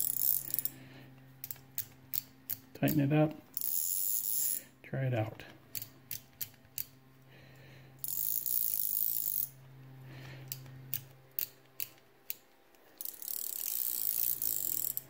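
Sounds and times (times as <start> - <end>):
fishing reel drag buzzing: 0.0 - 0.8, 3.6 - 4.6, 8.0 - 9.6, 13.0 - 15.0
sharp reel clicks: 0.0 - 0.8, 3.6 - 4.6, 8.0 - 9.5, 10.5 - 15.0.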